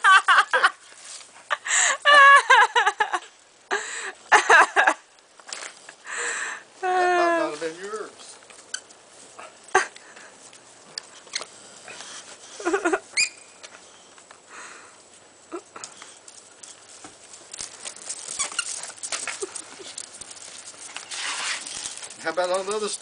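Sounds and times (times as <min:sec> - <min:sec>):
toy rustling and clicking: 0:15.7 - 0:23.0.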